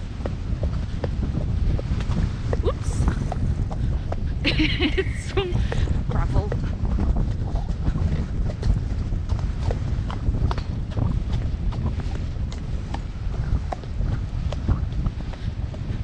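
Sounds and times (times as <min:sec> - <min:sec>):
horse hooves on wet gravel: 0:00.0 - 0:16.0
wind rumble on microphone: 0:00.0 - 0:16.0.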